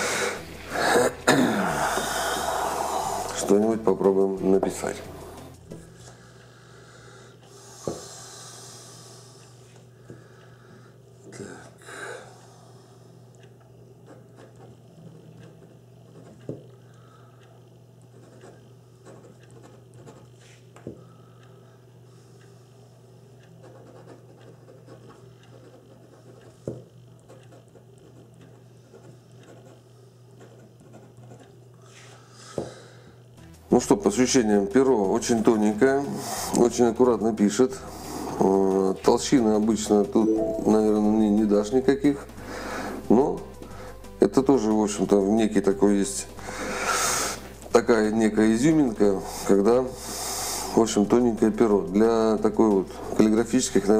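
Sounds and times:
fountain pen nib scratching paper: 15.4 - 16.5, 18.1 - 20.5, 23.6 - 26.6, 27.2 - 29.8, 30.4 - 31.6.

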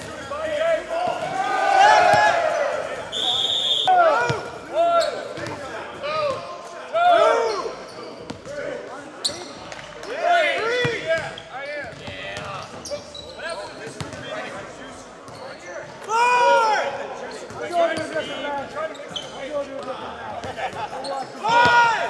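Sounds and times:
basketballs bouncing: 5.4 - 6.4, 10.8 - 12.9
shoes squeaking on gym floor: 9.2 - 9.9, 11.2 - 14.2, 15.3 - 15.9, 17.3 - 19.6.

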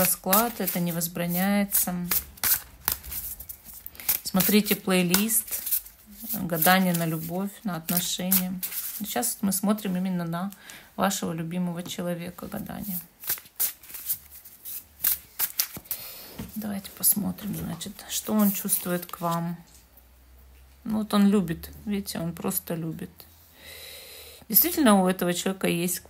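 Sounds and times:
cards shuffled by hand: 0.0 - 9.2, 12.8 - 16.0.

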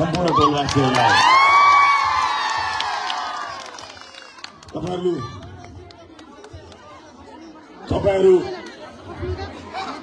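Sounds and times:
crowd chatter: 2.0 - 10.0.

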